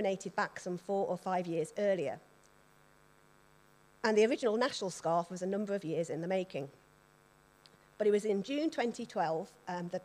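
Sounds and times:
woman speaking: 0:00.0 - 0:02.2, 0:04.0 - 0:06.8, 0:08.0 - 0:10.0
faint electrical hum: 0:00.0 - 0:10.0.

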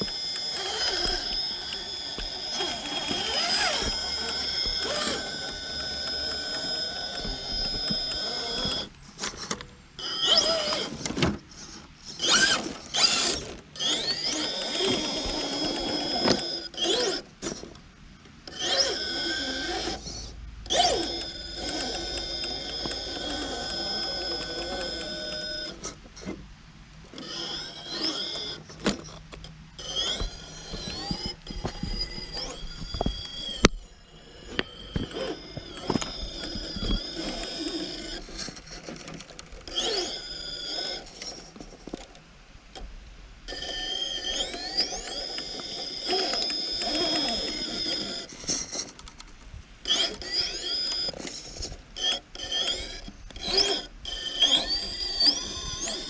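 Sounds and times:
rc car motor whining: 0:00.0 - 0:17.8, 0:18.4 - 0:26.3, 0:27.1 - 0:42.2, 0:43.5 - 0:49.2, 0:49.8 - 0:56.0.

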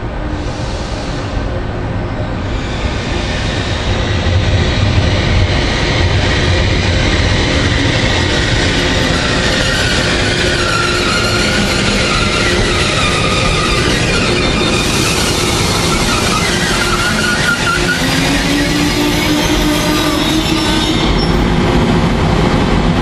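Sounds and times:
electric locomotive running: 0:00.1 - 0:23.0.

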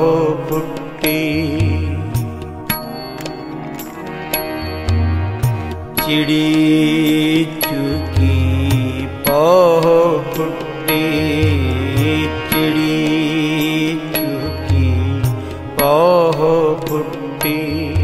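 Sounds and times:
sustained melodic accompaniment: 0:00.0 - 0:18.0.

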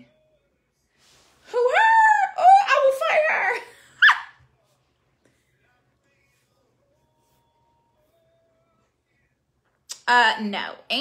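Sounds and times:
woman speaking loudly: 0:01.5 - 0:03.6.

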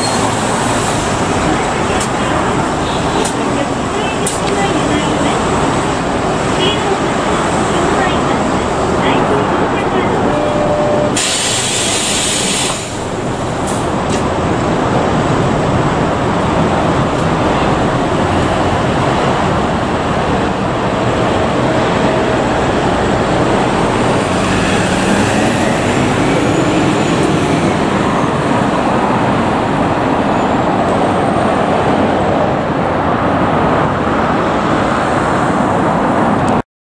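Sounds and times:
bus engine pulling away: 0:00.0 - 0:36.6
road traffic: 0:00.0 - 0:36.6.

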